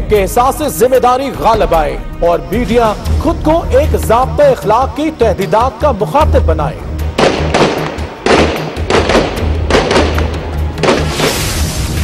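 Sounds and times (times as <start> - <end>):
loud explosion blasts: 7.2 - 12.0.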